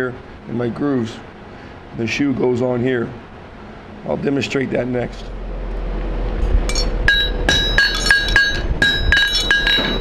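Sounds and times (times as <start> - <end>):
hammer striking horseshoe on anvil: 6.7 - 10.0.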